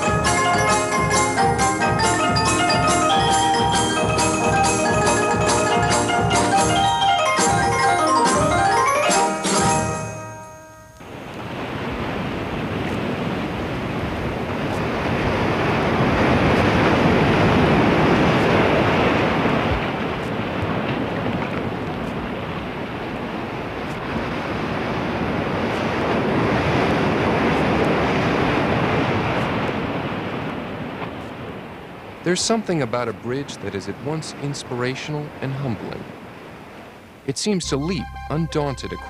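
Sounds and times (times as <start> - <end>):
ocean surf breaking on beach: 11.0 - 37.6.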